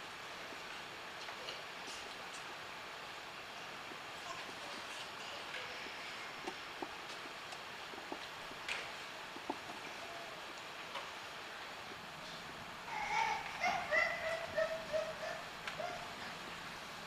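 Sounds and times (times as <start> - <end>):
room hiss: 0.0 - 17.0.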